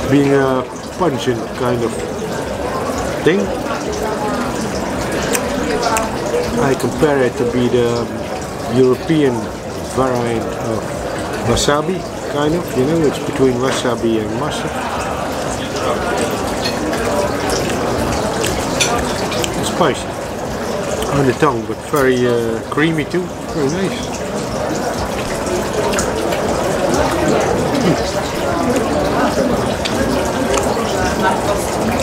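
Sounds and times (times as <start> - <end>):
murmur of people talking: 0.0 - 32.0.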